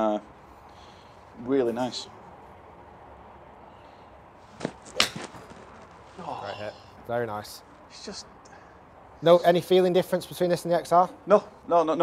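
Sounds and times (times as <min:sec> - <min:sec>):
golf club striking ball: 0:04.6 - 0:05.6.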